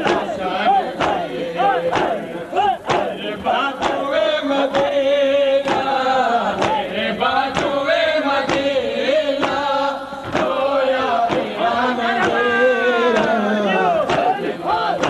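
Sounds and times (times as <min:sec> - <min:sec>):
men chanting a lament: 0:00.0 - 0:15.0
rhythmic chest-beating slaps: 0:00.0 - 0:15.0.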